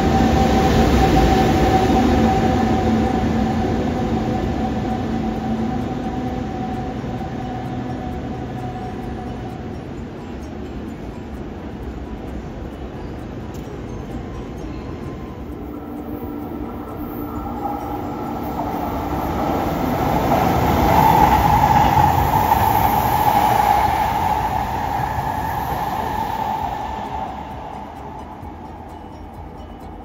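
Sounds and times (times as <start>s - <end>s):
electric train passing: 0.0s - 30.0s
steady high tone: 0.0s - 30.0s.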